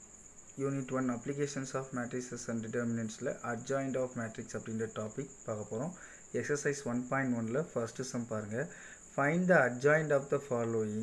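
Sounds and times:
man talking: 0:00.6 - 0:11.0.

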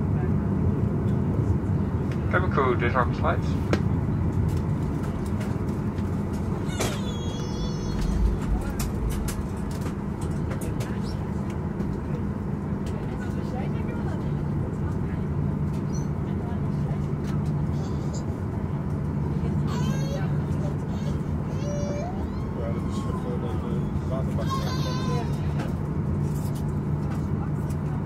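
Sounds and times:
low engine hum: 0:00.0 - 0:28.0
passengers talking: 0:00.0 - 0:28.0.

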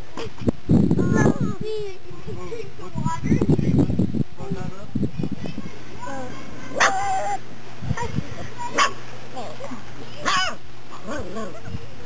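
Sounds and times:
child's voice: 0:00.1 - 0:04.0, 0:05.2 - 0:10.4.

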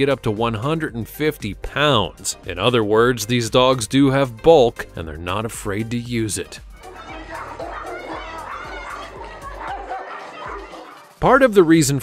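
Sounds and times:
background music: 0:00.0 - 0:12.0
people's voices: 0:06.4 - 0:12.0
dog barking: 0:06.8 - 0:11.1.

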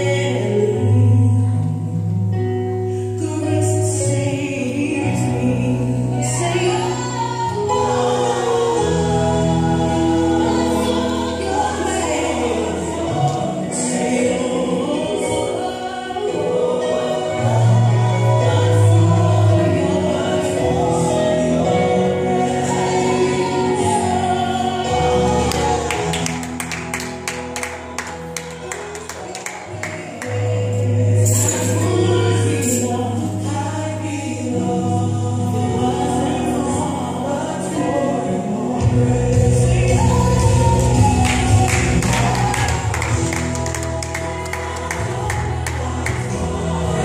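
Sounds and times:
gospel choir singing: 0:00.0 - 0:47.0
steady bass: 0:30.4 - 0:47.0.

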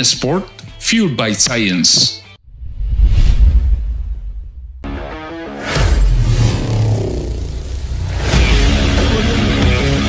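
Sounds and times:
heavy rock music: 0:04.8 - 0:10.0.

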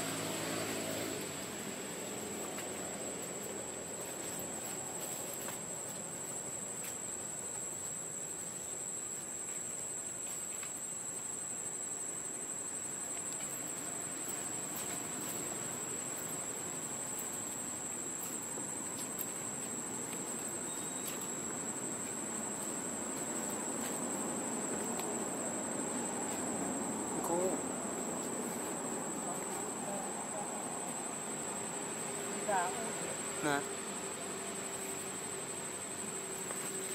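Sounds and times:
grainy background hiss: 0:00.0 - 0:36.9
high-pitched insect buzz: 0:13.3 - 0:36.9.

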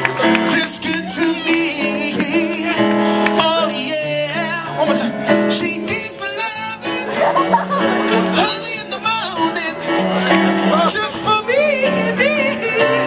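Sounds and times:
guitar: 0:00.0 - 0:13.0
man singing: 0:00.2 - 0:13.0.

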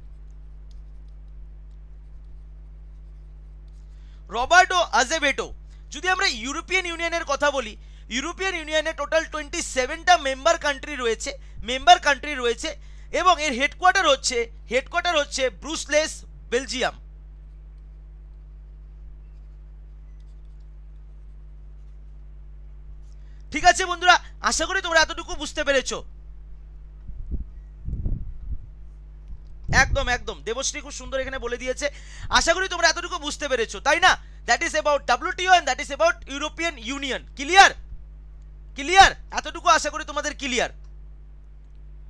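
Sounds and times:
stylus scratching on pen tablet: 0:00.0 - 0:03.9, 0:18.4 - 0:22.3
steady low hum: 0:00.0 - 0:42.0.

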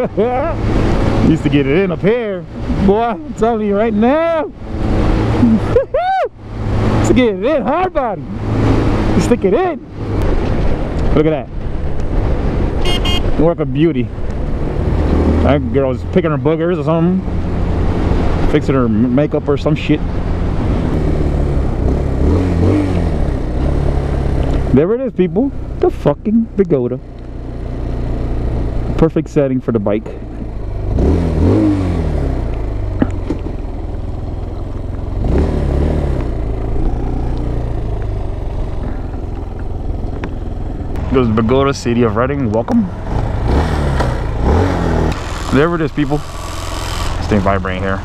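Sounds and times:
motorcycle engine humming: 0:00.0 - 0:48.0.

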